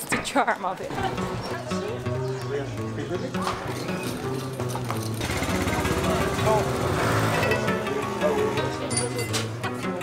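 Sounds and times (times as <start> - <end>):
background music: 0.0 - 10.0
small motorbike engine running: 5.0 - 7.6.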